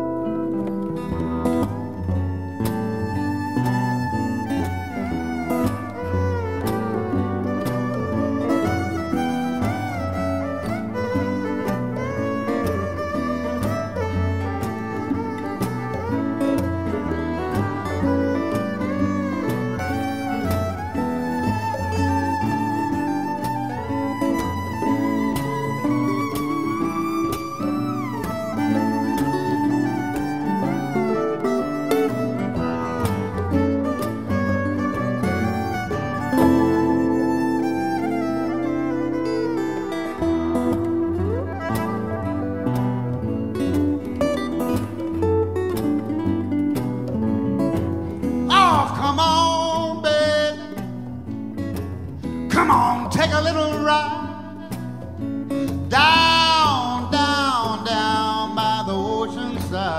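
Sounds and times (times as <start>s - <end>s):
fiddle holding long high notes: 0.0s - 50.5s
electric guitar: 0.0s - 59.9s
strummed acoustic guitars: 0.0s - 59.9s
person singing: 48.5s - 50.9s, 52.5s - 55.1s, 55.9s - 59.9s.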